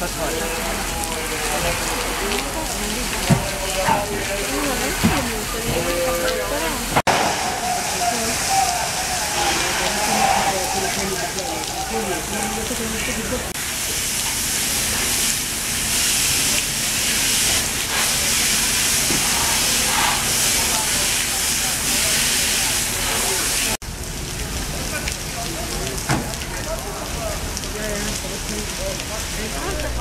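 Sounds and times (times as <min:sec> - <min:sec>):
faint voices: 0:00.0 - 0:13.6, 0:24.6 - 0:30.0
fire hose water jet hissing: 0:00.0 - 0:23.8.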